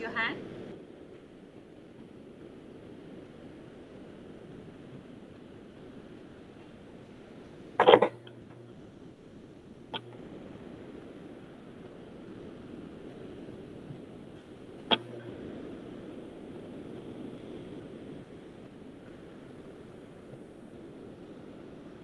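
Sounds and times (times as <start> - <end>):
faint microphone hiss: 0.0 - 22.0.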